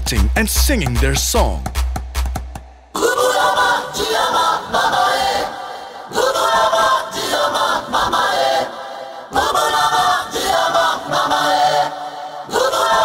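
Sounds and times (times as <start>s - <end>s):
bass and kick drum: 0.0s - 2.9s
chanted choral vocals: 2.9s - 13.0s.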